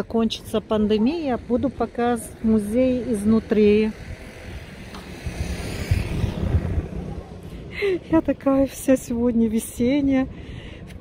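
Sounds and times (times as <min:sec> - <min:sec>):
distant traffic hiss: 0:00.0 - 0:09.0
wind rumble on microphone: 0:00.1 - 0:11.0.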